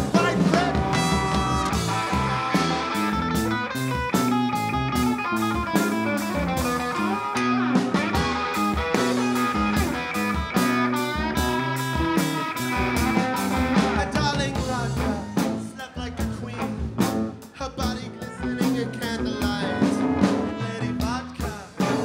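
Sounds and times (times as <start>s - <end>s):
drum kit beat: 0.0s - 22.0s
electric guitar: 0.0s - 22.0s.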